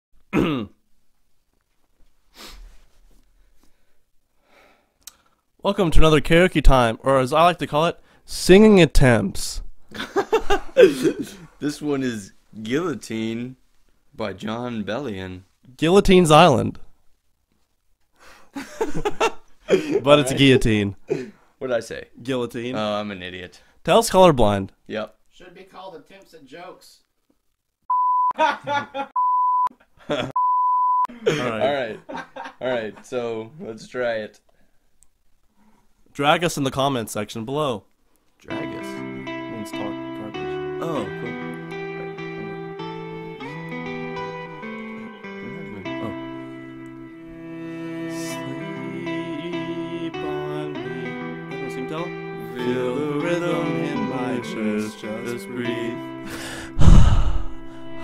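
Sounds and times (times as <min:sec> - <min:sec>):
man clearing his throat: 0:00.3 - 0:00.8, 0:56.8 - 0:57.5
laughter: 0:09.9 - 0:11.4, 0:18.6 - 0:20.1, 0:28.4 - 0:29.2, 0:30.0 - 0:30.4, 0:31.1 - 0:33.0
speech: 0:20.0 - 0:21.0, 0:21.6 - 0:27.0, 0:36.2 - 0:41.2
censor bleep: 0:27.9 - 0:28.4, 0:29.2 - 0:29.7, 0:30.4 - 0:31.1.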